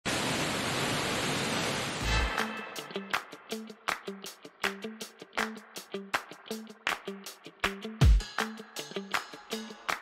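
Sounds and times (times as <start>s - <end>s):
steady rushing noise: 1.6s - 3.4s.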